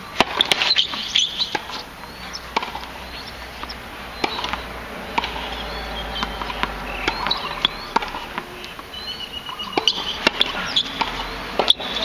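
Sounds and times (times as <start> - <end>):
tennis ball knocks: 0.2 - 8.9, 9.5 - 12.0
sneaker squeaks on court: 0.3 - 12.0.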